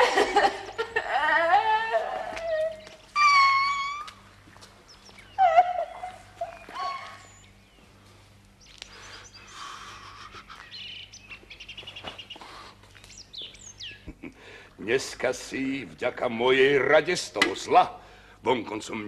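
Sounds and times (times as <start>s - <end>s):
woman wailing in tears: 0.0s - 4.2s, 5.4s - 7.3s.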